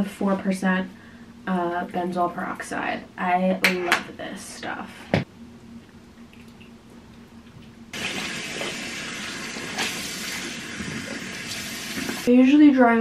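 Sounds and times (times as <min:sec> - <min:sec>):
tap water running: 0:07.9 - 0:12.3
water splashing on face: 0:08.0 - 0:12.3.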